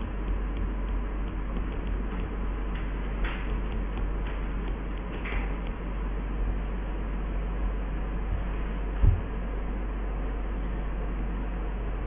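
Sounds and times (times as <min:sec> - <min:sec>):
stylus tapping on tablet screen: 0:00.0 - 0:05.8
low electrical hum: 0:00.0 - 0:12.0.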